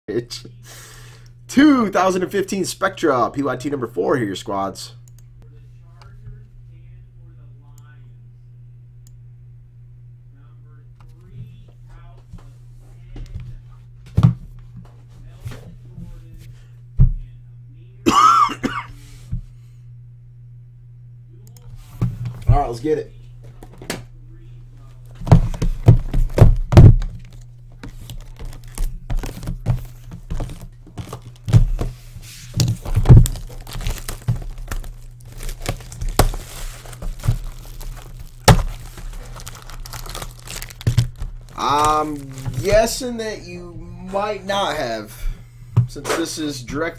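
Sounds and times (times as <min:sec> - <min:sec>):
steady low hum: 0:00.1 - 0:46.9
person coughing: 0:18.0 - 0:19.0
boxes knocking on a desk: 0:25.2 - 0:27.1
plastic wrapping crinkling: 0:25.8 - 0:43.0.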